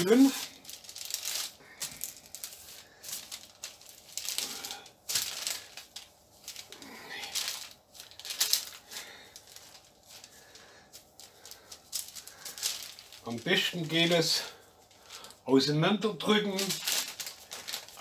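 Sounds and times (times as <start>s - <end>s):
paper crinkling: 0.0s - 15.4s, 16.2s - 18.0s.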